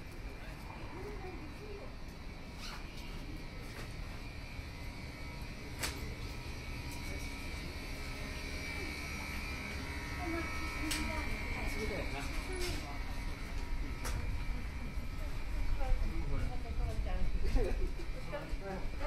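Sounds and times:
faint voices of passers-by: 0.0 - 19.0
high whine: 0.0 - 19.0.

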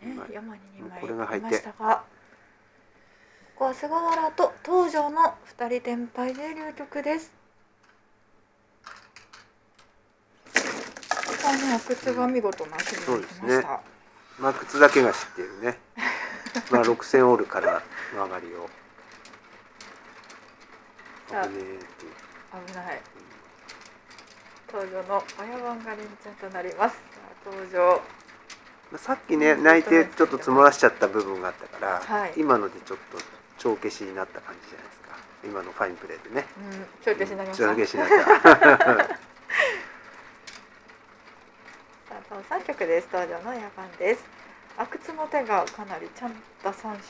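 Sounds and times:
mahjong tiles clicking: 8.8 - 47.0.

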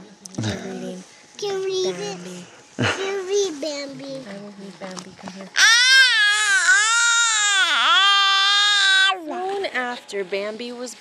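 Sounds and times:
toddler screaming: 5.6 - 9.2.

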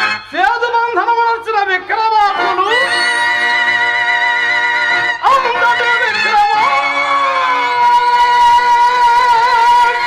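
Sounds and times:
man singing long high note: 5.2 - 10.0.

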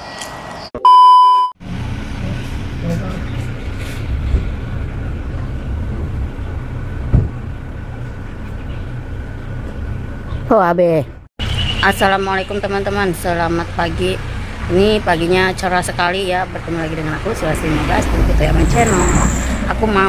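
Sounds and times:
loud electronic beep: 0.8 - 1.6
steady low rumble: 1.7 - 10.3.

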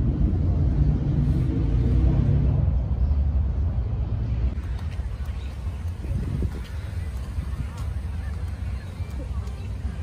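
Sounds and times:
low street ambience rumble: 0.0 - 10.0.

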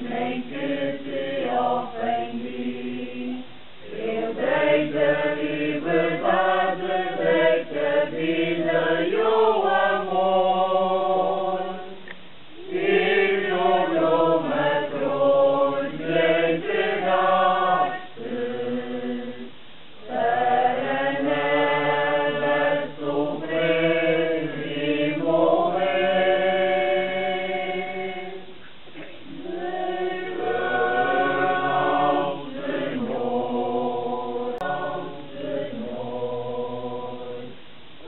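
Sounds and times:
group singing a hymn unaccompanied: 0.0 - 37.7.

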